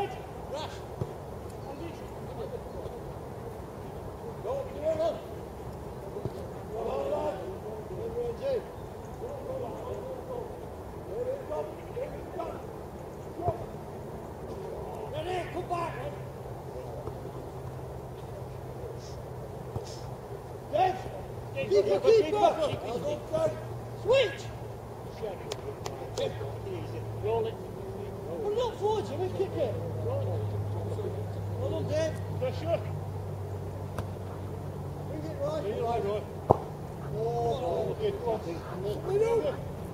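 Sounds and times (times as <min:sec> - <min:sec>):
distant footballers shouting: 0:00.0 - 0:39.9
football kicked: 0:36.4 - 0:36.8.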